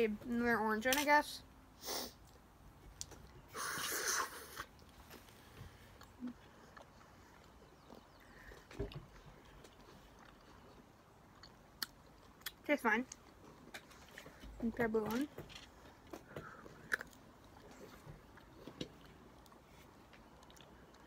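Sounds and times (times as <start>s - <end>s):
faint chewing of candy: 2.2s - 21.0s.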